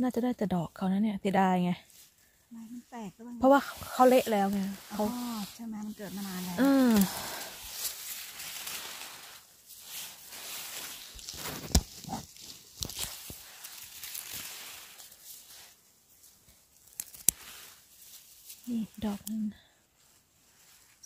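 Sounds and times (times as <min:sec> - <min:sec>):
rustling of dry grass and needles: 0:01.2 - 0:21.0.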